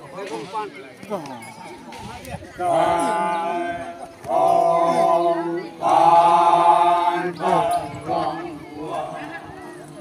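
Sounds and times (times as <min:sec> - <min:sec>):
men chanting in unison: 0:02.6 - 0:09.4.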